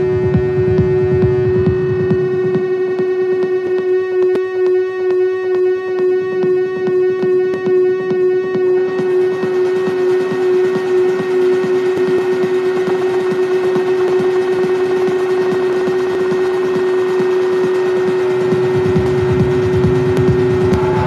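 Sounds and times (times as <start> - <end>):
pulsing synth bass line: 0.0 - 21.0
synthesizer drone: 0.0 - 21.0.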